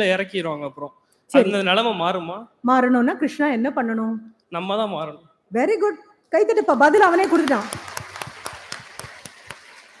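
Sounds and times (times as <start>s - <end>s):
scattered hand claps: 7.0s - 10.0s.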